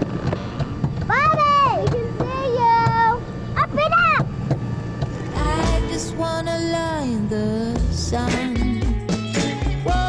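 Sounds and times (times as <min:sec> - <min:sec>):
steady low hum: 0:00.0 - 0:09.0.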